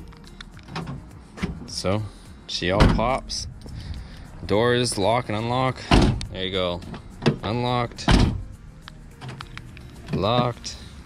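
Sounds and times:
car door locks thunk: 0:02.8 - 0:03.2, 0:05.9 - 0:06.3, 0:08.0 - 0:08.5.

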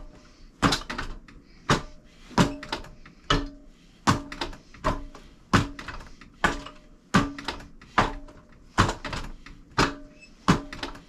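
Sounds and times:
arms knocking on wooden dummy: 0:00.6 - 0:11.0.

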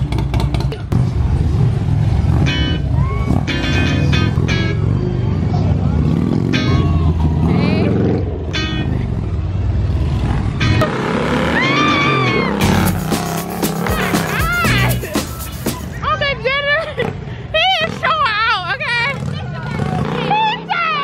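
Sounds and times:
motorcycles riding slowly past: 0:00.0 - 0:21.0
music: 0:12.5 - 0:16.0
voices: 0:13.7 - 0:21.0.

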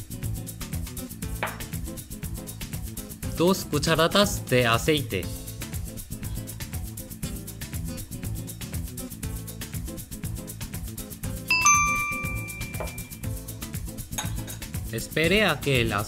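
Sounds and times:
background music with a beat: 0:00.0 - 0:03.3, 0:05.4 - 0:14.1.

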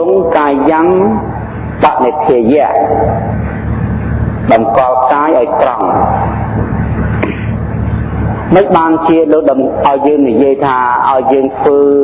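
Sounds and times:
steady hiss with low hum: 0:00.0 - 0:12.0.

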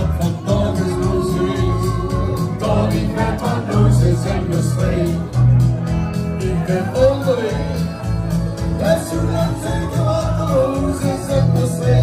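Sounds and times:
man singing into a microphone: 0:00.0 - 0:05.5, 0:06.3 - 0:12.0
group of voices singing along: 0:00.0 - 0:05.6, 0:08.8 - 0:12.0
backing track with pulsing bass: 0:00.0 - 0:12.0.

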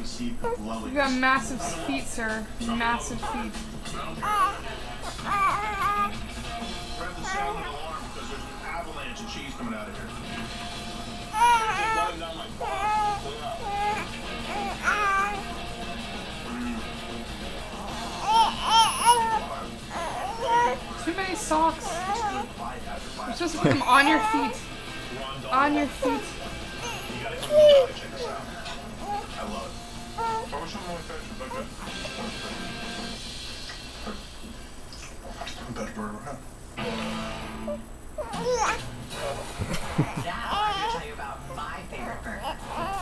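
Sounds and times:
faint background music: 0:00.0 - 0:43.0
television voices: 0:00.0 - 0:43.0
baby squealing: 0:04.2 - 0:06.2, 0:07.2 - 0:07.8, 0:11.3 - 0:15.6, 0:17.8 - 0:20.8, 0:21.6 - 0:22.5, 0:23.8 - 0:24.6, 0:25.9 - 0:28.4, 0:30.2 - 0:30.5, 0:38.2 - 0:38.9, 0:40.0 - 0:41.1, 0:42.4 - 0:43.0.

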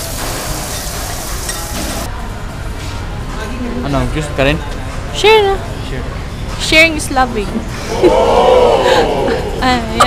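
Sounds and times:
meat sizzling on griddle: 0:00.0 - 0:02.1.

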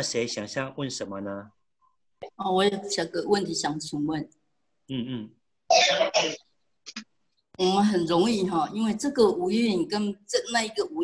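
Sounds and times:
person clearing throat: 0:04.9 - 0:06.4
person coughing: 0:05.7 - 0:06.4.

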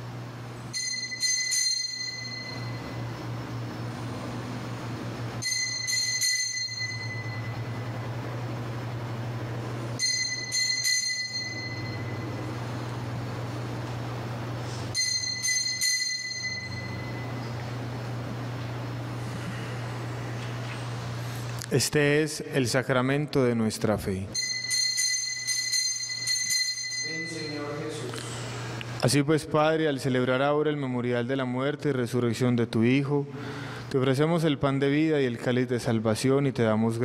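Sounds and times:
steady low hum: 0:00.0 - 0:37.0
altar bell strikes: 0:00.7 - 0:03.1, 0:05.4 - 0:08.0, 0:10.0 - 0:12.6, 0:14.9 - 0:17.5, 0:24.4 - 0:28.1.

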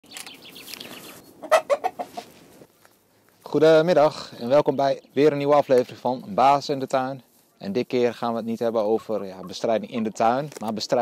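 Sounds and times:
chickens chirping: 0:00.0 - 0:02.9, 0:03.8 - 0:10.5
chickens clucking loudly: 0:01.1 - 0:02.6, 0:07.7 - 0:10.5.

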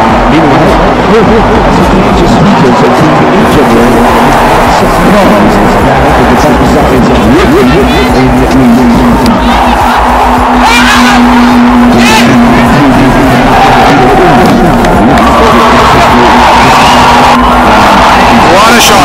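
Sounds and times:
steady hum: 0:00.0 - 0:19.0
people calling out: 0:09.2 - 0:19.0.

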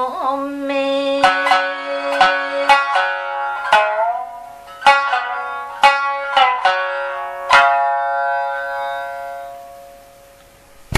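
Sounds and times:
plucked shamisen note: 0:00.0 - 0:10.9.

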